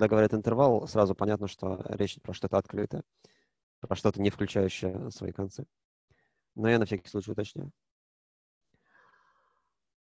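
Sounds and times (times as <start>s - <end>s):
faint breath: 3.1s - 3.6s, 8.8s - 9.8s.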